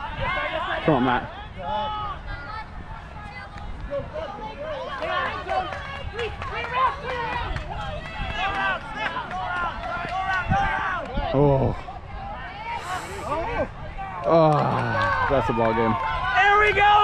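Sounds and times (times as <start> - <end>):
players calling out and talking: 0.0 - 17.0.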